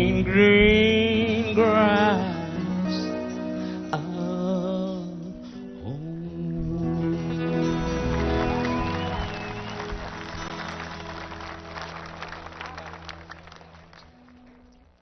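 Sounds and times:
live band closing chord: 6.5 - 14.9
audience applause: 7.3 - 15.0.

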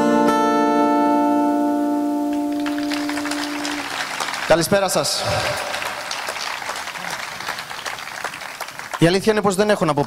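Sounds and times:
acoustic guitar chord ringing: 0.1 - 5.2
audience clapping: 2.3 - 9.6.

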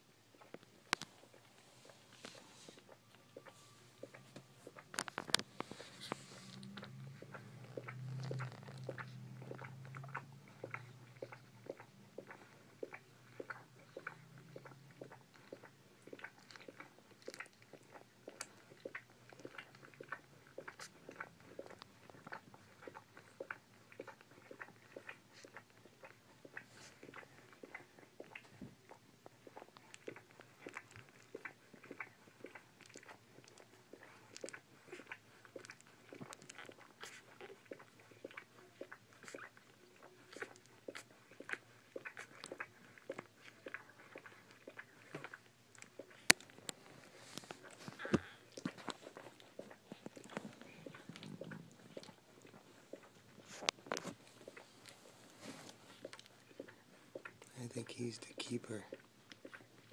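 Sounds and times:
puppies suckling wet smacking: 0.0 - 59.9.

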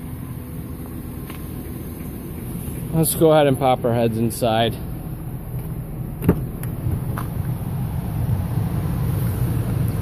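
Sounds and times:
steady low hum: 0.0 - 10.0
car door latch clicking: 6.2 - 7.4.

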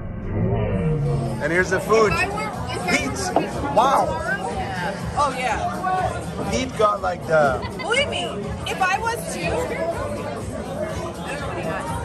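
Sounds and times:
overlapping chatter of voices: 0.8 - 12.0.

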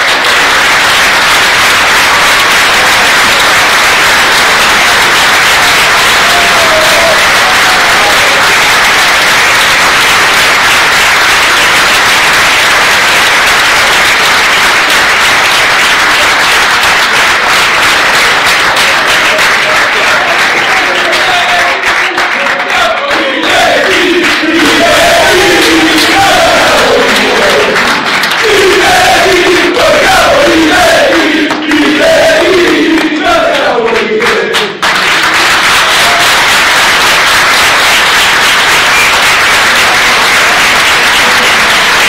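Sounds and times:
crowd applauding: 0.0 - 42.0.

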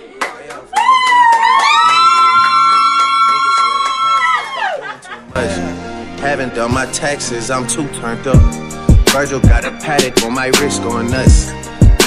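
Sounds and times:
hip-hop music with held note: 5.2 - 12.0.

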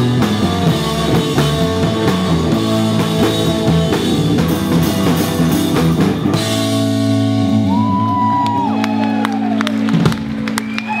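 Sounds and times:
electric guitar and bass chord ringing: 0.0 - 10.6.

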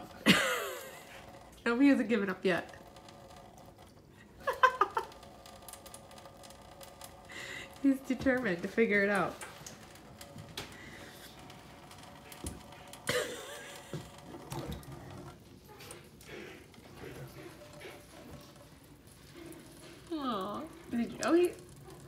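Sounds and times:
water trickling into steel sink: 0.0 - 22.0.

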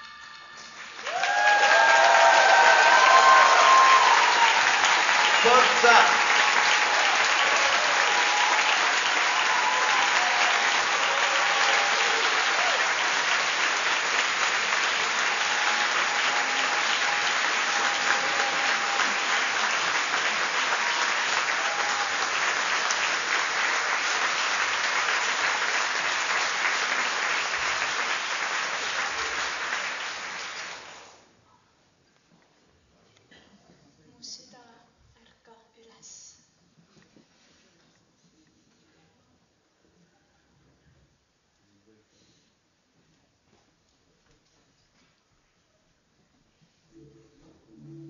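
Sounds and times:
audience applauding: 0.0 - 31.2.

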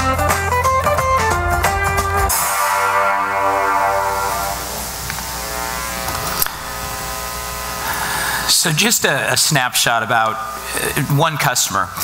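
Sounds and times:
music track: 0.0 - 7.5
electrical hum and buzz: 0.0 - 12.0.

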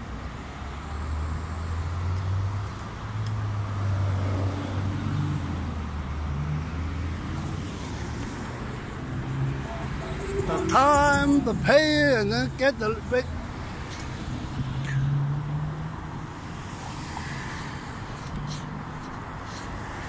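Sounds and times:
road noise: 0.0 - 20.0
vehicle engine hum: 0.0 - 20.0.

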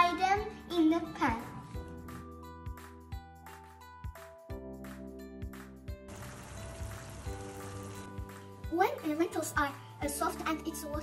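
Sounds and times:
background music with steady beat: 0.0 - 11.0
onions sizzling in frying pan: 6.1 - 8.1.

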